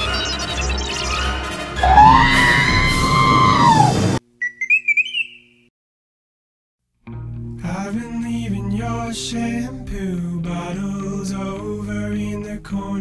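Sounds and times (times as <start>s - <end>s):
film score music: 0.0s - 4.2s
loud held wail: 1.5s - 4.2s
warbling electronic beeps: 1.8s - 2.6s.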